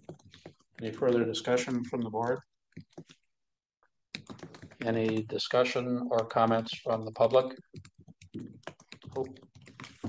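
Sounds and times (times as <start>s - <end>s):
laptop keyboard typing: 0.0s - 3.3s, 4.1s - 10.0s.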